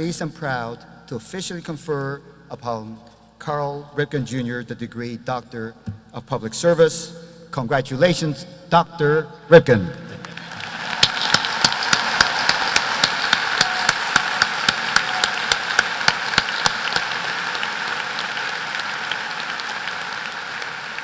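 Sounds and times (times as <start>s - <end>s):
audience applauding: 10.2s - 21.0s
nearby hands clapping sharply: 10.2s - 21.0s.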